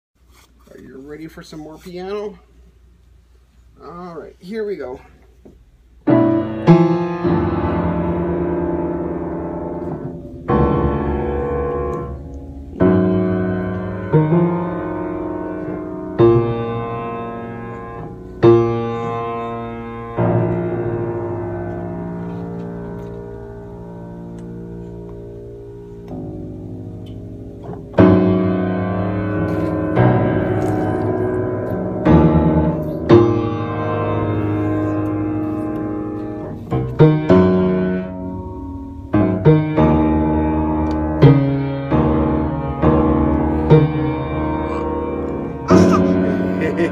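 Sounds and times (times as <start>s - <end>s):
piano chords struck: 6.0s - 46.9s.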